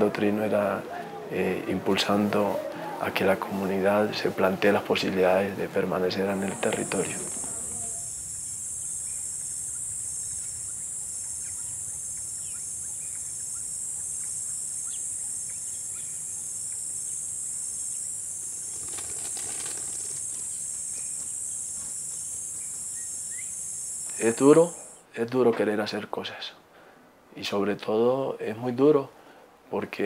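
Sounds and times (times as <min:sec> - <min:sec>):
insect chorus buzzing: 0:04.7 - 0:25.0
short insect chirps: 0:06.2 - 0:25.0.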